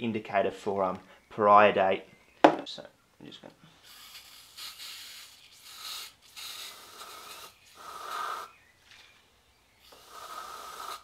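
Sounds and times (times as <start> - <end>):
aerosol can hissing in bursts: 3.8 - 8.5, 9.8 - 11.0.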